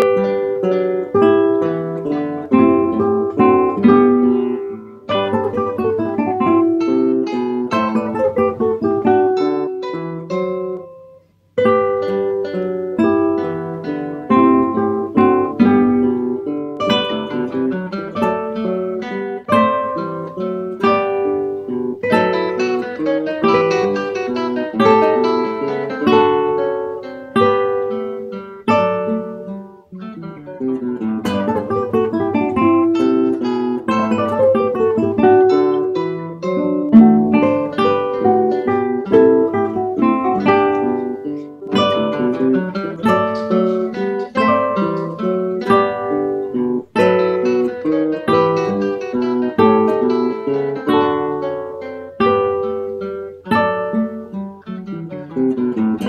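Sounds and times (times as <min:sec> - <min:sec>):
classical guitars playing: 0:00.0 - 0:56.0.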